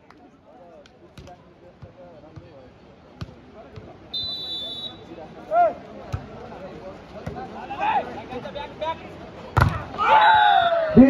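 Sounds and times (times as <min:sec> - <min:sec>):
faint crowd chatter: 0:00.0 - 0:11.0
ball bouncing on dirt: 0:00.8 - 0:02.5, 0:06.1 - 0:06.3, 0:07.2 - 0:07.5, 0:09.6 - 0:09.9
referee whistle blast: 0:04.1 - 0:05.1.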